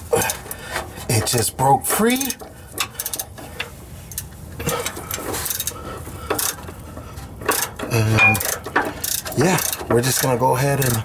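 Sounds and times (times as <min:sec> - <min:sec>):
hand ratchet clicking: 0:00.2 - 0:11.0
metallic knocks: 0:07.4 - 0:11.0.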